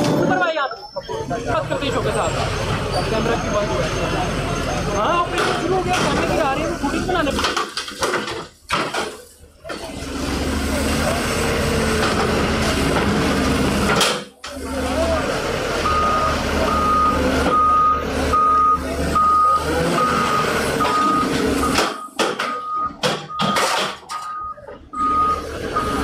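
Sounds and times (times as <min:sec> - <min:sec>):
diesel engine running under load: 0:00.0 - 0:26.0
reversing alarm beeping: 0:15.8 - 0:26.0.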